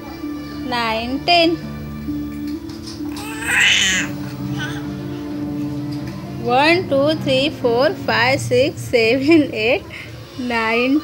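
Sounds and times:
baby crying: 3.1s - 5.0s.

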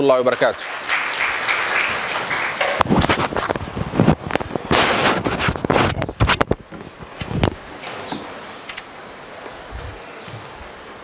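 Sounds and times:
applause: 0.0s - 3.8s
microphone handling knocks: 2.6s - 8.4s.

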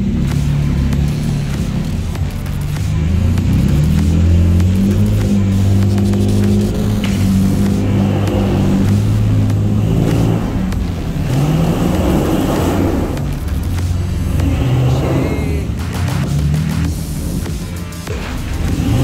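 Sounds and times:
engine running and revving: 0.0s - 19.0s.

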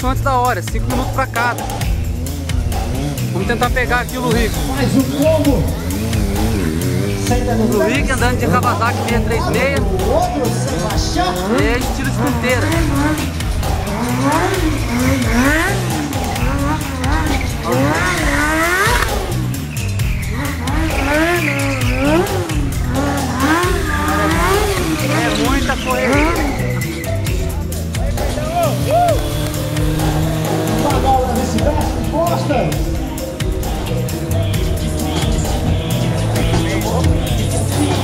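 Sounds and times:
motorcycle engine revving: 0.0s - 38.0s
music playing: 0.0s - 38.0s
voice over loudspeakers: 24.8s - 26.5s.

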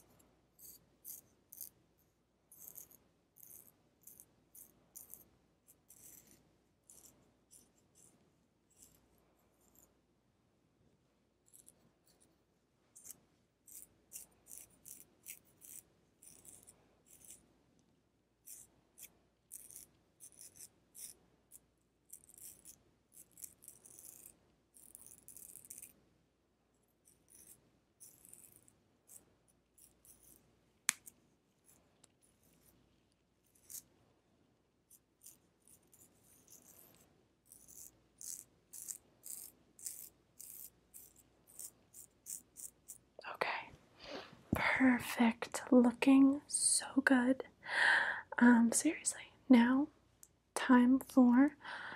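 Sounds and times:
scissors snipping hair: 0.6s - 1.7s, 2.5s - 5.2s, 13.0s - 17.4s, 18.4s - 26.0s, 27.0s - 29.2s, 29.8s - 31.8s, 33.4s - 33.9s, 34.9s - 43.0s.

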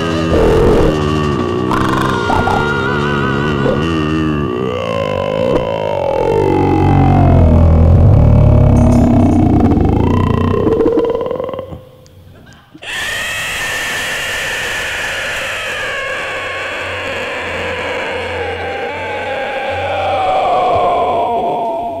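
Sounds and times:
audience cheering and screaming: 1.7s - 3.9s.

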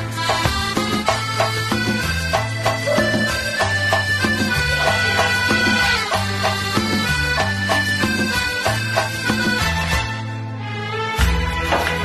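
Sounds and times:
karaoke backing track: 0.0s - 9.8s
percussion strikes: 0.3s - 9.3s
sustained bass notes: 2.6s - 6.1s.

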